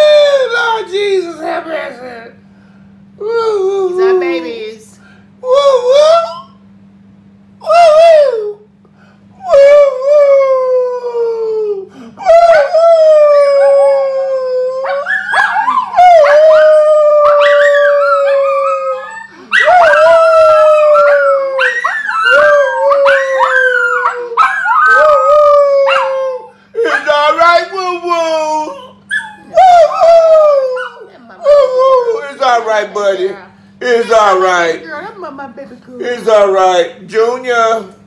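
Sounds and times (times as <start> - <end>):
dog howling: 9.4 - 27.6, 28.2 - 32.8.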